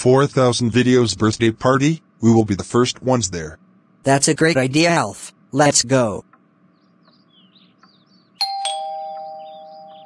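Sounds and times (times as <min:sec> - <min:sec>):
two-tone doorbell chime: 0:08.4 - 0:10.0.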